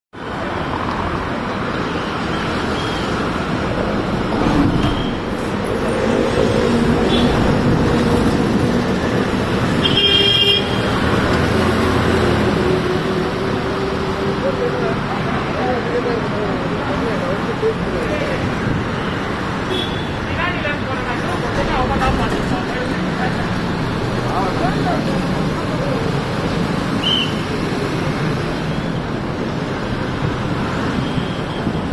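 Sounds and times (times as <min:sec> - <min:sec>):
vehicles running past: 0:00.2 - 0:31.9.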